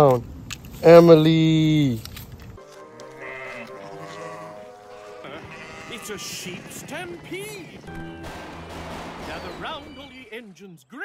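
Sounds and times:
cartoon background music: 2.6s - 11.0s
sheep bleating: 2.9s - 8.0s.

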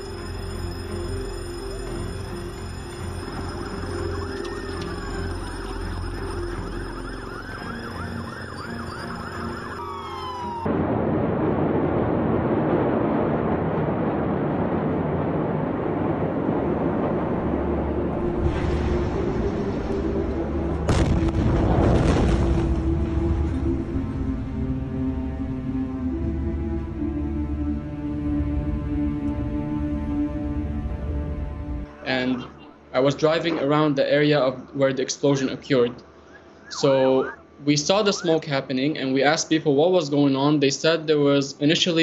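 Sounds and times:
emergency sirens wailing: 0.0s - 11.7s, 15.6s - 33.0s, 35.8s - 38.6s
dark music: 0.0s - 39.9s
explosion blast: 10.5s - 23.7s.

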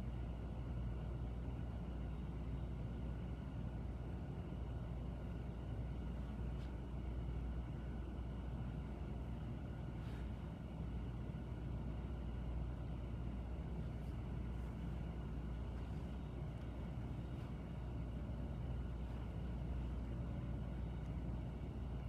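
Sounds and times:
faint thin steady tones: 0.0s - 22.0s
low rumble and hiss: 0.0s - 22.0s.

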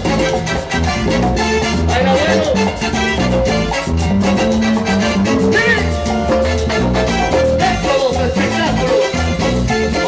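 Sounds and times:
drum kit and percussion: 0.0s - 10.0s
electric bass line: 0.0s - 10.0s
live band playing latin dance music: 0.0s - 10.0s.

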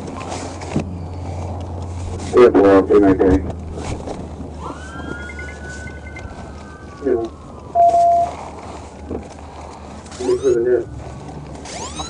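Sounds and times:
low hum: 0.0s - 10.1s
siren wailing: 4.6s - 12.0s
short steady beep: 7.8s - 8.4s.

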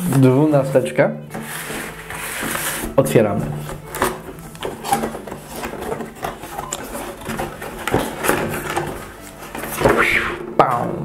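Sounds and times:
cardboard rubbing and scraping: 0.1s - 10.5s.

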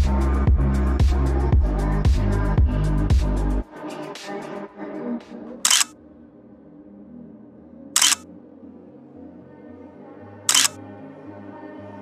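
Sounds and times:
background music: 0.0s - 12.0s
camera shutter clicks: 5.7s - 5.9s, 8.0s - 8.2s, 10.5s - 10.8s.

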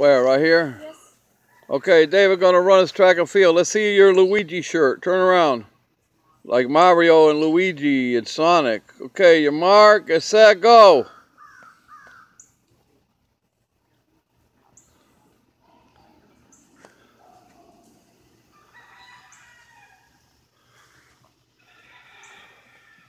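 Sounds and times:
distant rooster crowing: 16.8s - 23.0s.

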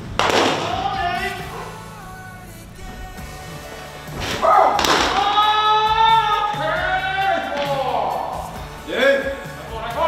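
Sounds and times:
baseball hitting catcher's mitt: 0.2s - 0.8s, 4.2s - 5.3s.

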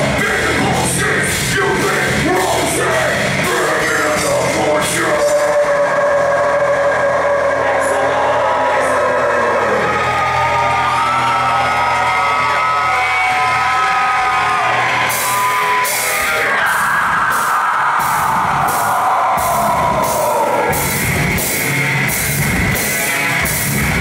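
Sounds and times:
distorted electric guitars: 0.0s - 24.0s
shouted vocals: 2.1s - 20.9s.

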